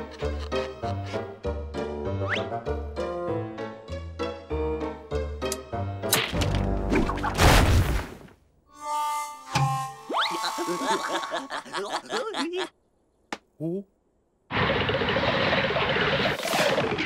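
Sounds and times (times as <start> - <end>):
playful cartoon music: 0.0 - 7.4, 8.7 - 11.6.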